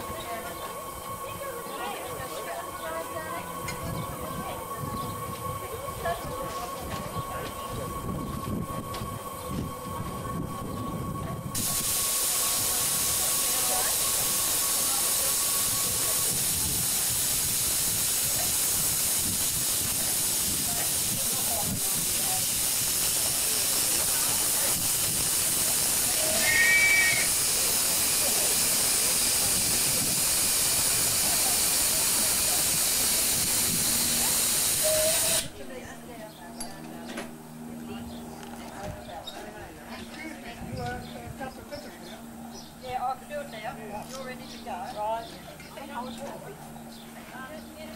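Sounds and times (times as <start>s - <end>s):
loud steam hiss: 0.0s - 35.6s
short high whistle peep: 26.2s - 27.3s.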